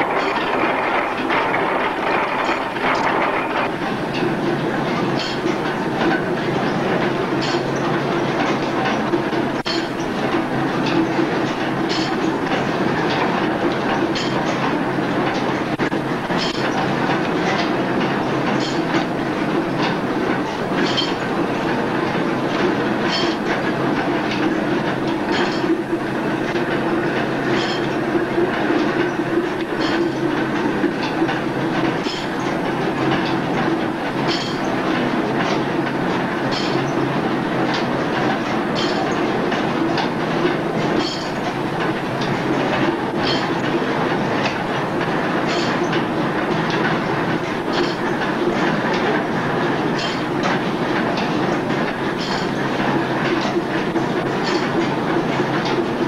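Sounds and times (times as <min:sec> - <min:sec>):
sharp clacks: 0:00.0 - 0:21.8, 0:22.5 - 0:56.0
mill machinery clattering rumble: 0:00.0 - 0:56.0.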